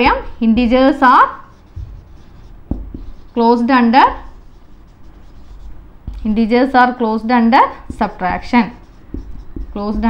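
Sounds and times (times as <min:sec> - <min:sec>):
woman's voice: 0:00.0 - 0:01.6, 0:03.4 - 0:04.3, 0:06.2 - 0:08.9, 0:09.7 - 0:10.0
marker writing on whiteboard: 0:00.0 - 0:10.0
pen tapping on board: 0:01.6 - 0:03.3, 0:07.8 - 0:10.0.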